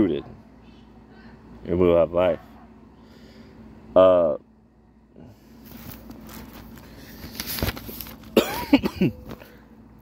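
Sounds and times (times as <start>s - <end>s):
man coughing: 8.3s - 9.2s.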